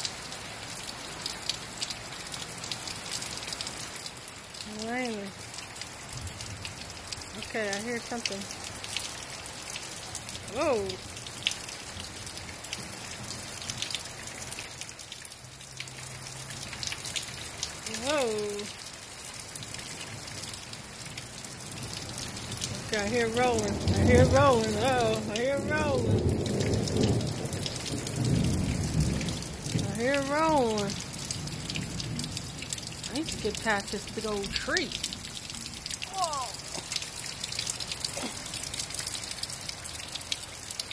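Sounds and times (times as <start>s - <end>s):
heavy rain falling: 0.0s - 40.9s
raindrops ticking close by: 0.0s - 40.9s
water dripping: 0.0s - 40.9s.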